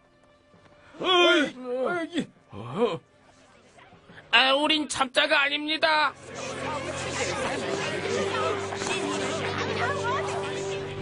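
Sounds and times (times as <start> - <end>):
voices talking and protesting: 3.4 - 11.0.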